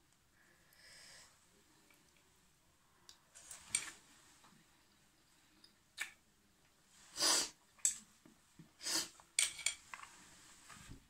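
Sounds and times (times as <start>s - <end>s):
person sniffing: 7.0s - 7.6s, 8.8s - 9.2s.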